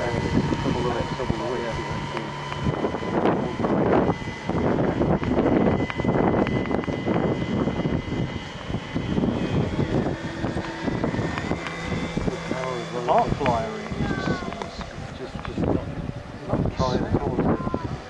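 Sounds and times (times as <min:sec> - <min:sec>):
autogyro engine and propeller drone: 0:00.0 - 0:18.0.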